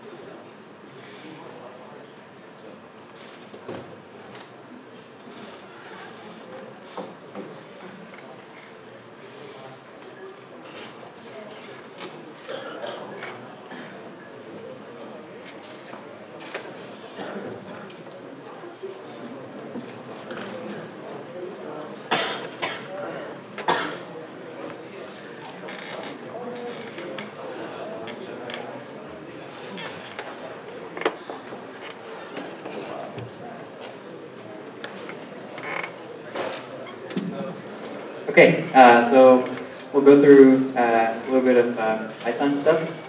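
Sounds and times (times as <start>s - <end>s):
murmur of many people talking: 0.0s - 43.0s
room noise: 0.0s - 43.0s
short creaks: 25.6s - 27.3s, 35.0s - 37.3s.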